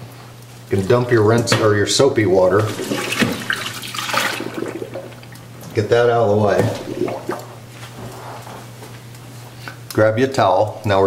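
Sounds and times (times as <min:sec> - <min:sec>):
water poured from bucket: 0:02.6 - 0:05.4, 0:06.6 - 0:07.5.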